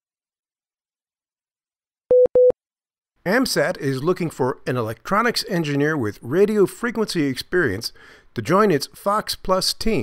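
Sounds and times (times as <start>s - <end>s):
short electronic beeps: 2.1s - 2.6s.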